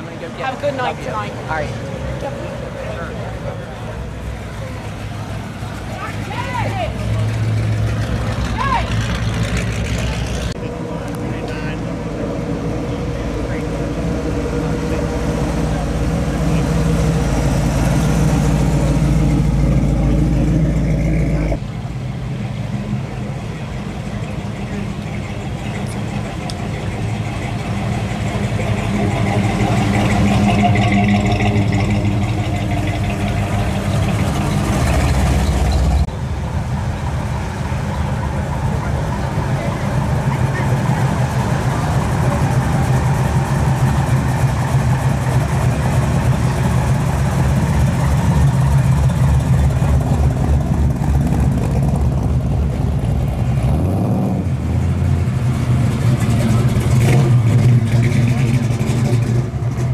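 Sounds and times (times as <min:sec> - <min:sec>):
car engines driving slowly past: 0:00.0 - 0:59.9.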